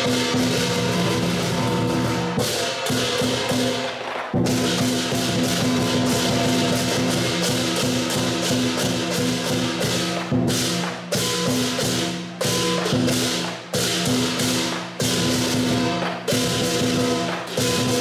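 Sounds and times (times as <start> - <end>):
cymbals clashing: 0.0 - 18.0
drum beating fast: 0.0 - 18.0.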